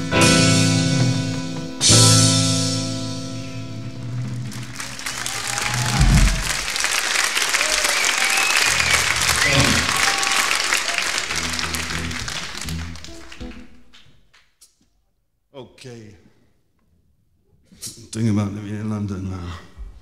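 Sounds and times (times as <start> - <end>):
audience applauding and cheering: 4.0 - 14.1
whistles: 7.6 - 11.2
low instrument notes: 8.7 - 14.0.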